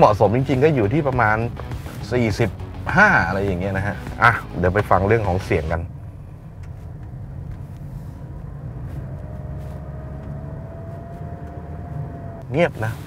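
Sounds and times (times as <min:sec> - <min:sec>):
tyre and road rumble: 0:00.0 - 0:13.0.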